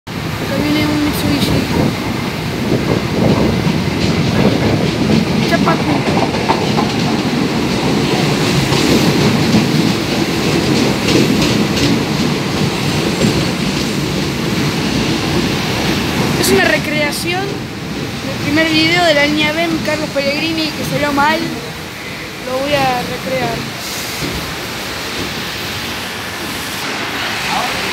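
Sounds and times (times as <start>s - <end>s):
subway train wheels rumbling: 0.1s - 27.9s.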